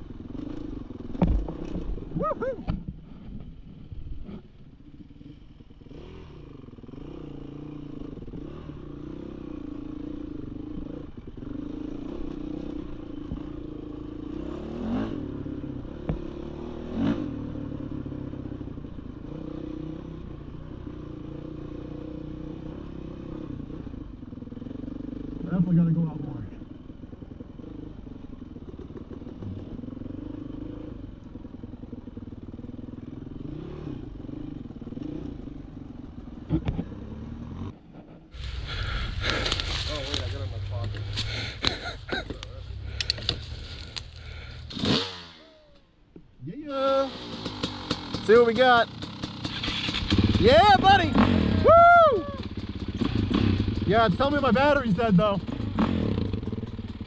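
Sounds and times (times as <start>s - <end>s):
dirt bike engine running: 0.0s - 57.0s.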